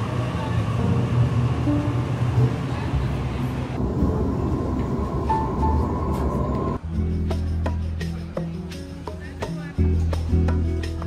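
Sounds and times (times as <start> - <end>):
train rumble with whine: 0.0 - 6.8
background music: 0.8 - 11.0.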